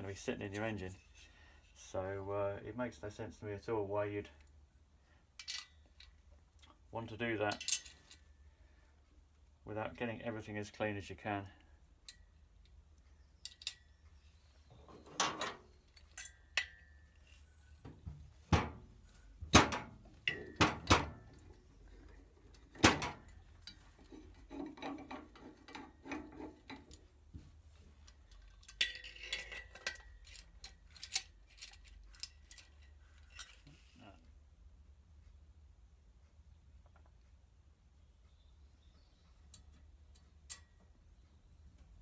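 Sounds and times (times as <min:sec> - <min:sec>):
metallic clicks and knocks: 0:17.8 - 0:27.1.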